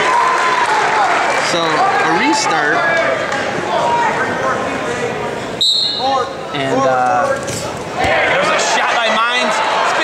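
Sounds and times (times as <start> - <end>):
referee's whistle blast: 5.6 - 6.2.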